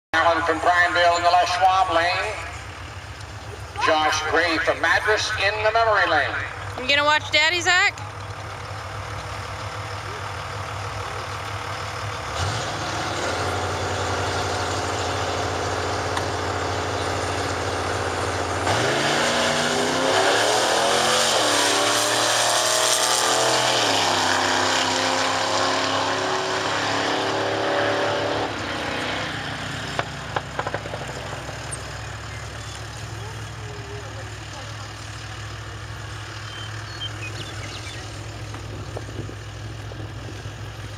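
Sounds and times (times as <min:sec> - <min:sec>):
drag racing cars idling: 0:00.2 - 0:20.1, 0:28.0 - 0:40.9
race cars accelerating hard: 0:12.3 - 0:32.2.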